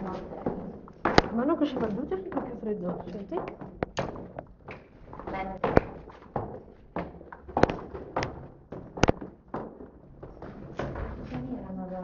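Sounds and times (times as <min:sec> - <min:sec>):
footsteps on concrete stairs: 0:00.0 - 0:12.0.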